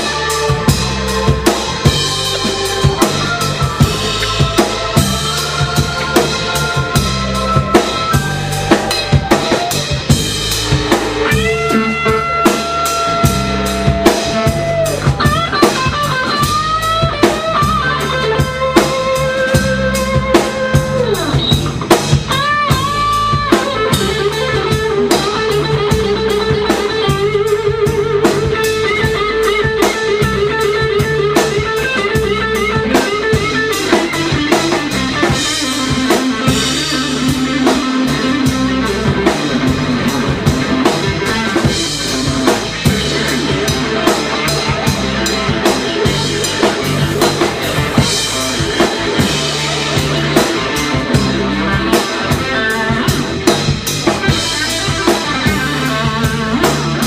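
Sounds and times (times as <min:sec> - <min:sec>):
drums and bass rhythm: 0:00.0 - 0:57.0
electric guitar lead: 0:00.0 - 0:57.0.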